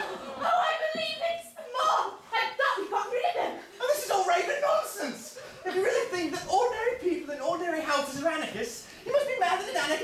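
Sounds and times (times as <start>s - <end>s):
people speaking: 0.4s - 10.0s.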